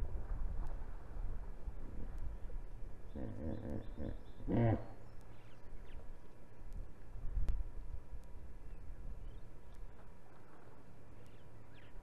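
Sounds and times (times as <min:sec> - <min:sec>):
low wind-like rumble: 0:00.0 - 0:12.0.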